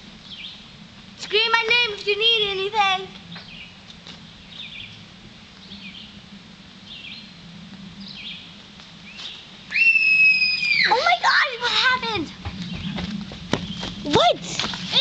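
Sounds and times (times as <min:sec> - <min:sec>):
high-pitched shriek: 0:09.7 - 0:11.0.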